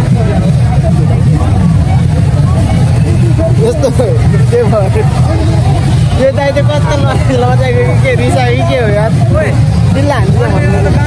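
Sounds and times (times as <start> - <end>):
crowd voices overlapping: 0.0 - 11.0.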